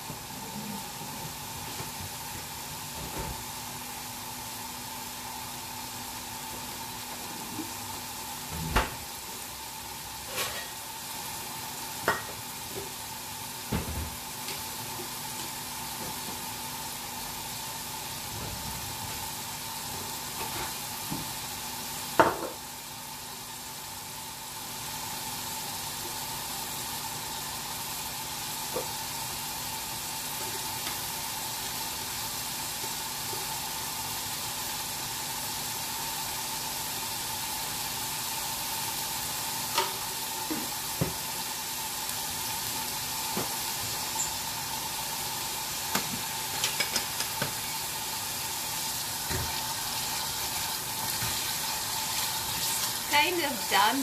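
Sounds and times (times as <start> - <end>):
onion frying in oil: 0.0 - 54.0.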